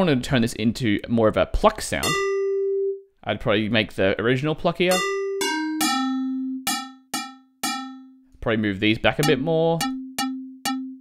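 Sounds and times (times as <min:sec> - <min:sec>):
plucked synth notes: 0:02.0 - 0:03.0, 0:04.9 - 0:08.2, 0:09.2 - 0:11.0.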